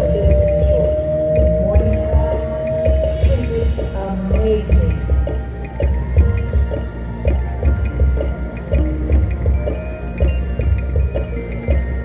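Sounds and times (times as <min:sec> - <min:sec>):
low drum beat: 0:00.0 - 0:12.0.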